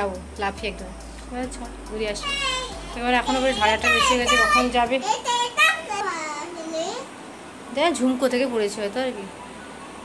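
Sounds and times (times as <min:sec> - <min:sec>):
children calling and chattering: 0:02.1 - 0:07.2.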